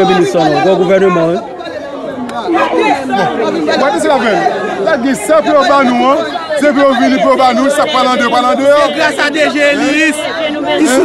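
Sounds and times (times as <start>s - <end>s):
man talking: 2.5s - 11.0s.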